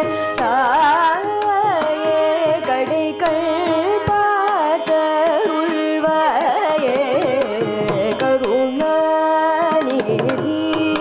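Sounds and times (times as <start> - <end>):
violin: 0.0 - 11.0
woman singing: 0.0 - 11.0.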